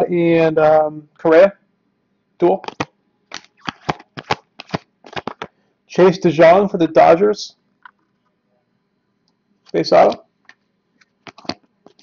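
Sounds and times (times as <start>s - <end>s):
cards snapping off stack: 2.6s - 5.5s, 11.2s - 12.0s.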